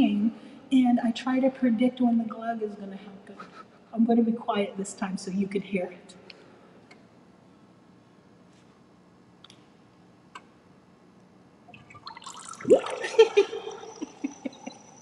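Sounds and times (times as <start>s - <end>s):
liquid gurgling glugs: 11.7s - 15.0s.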